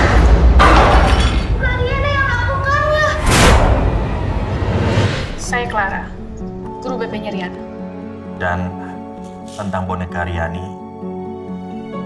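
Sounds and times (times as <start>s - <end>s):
deep rumble: 0.0s - 7.9s.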